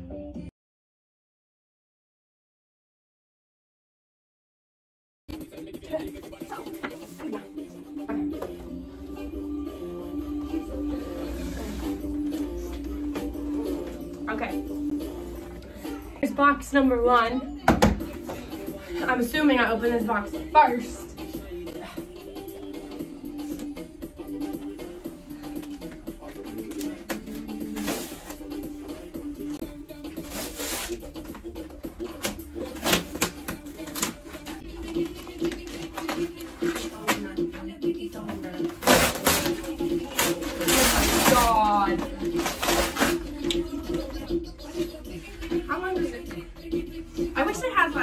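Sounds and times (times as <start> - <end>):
background music with vocals: 0.0 - 0.5, 5.3 - 48.0
thick cardboard ripping: 26.8 - 28.5, 30.2 - 31.1, 32.2 - 37.2, 38.6 - 43.3.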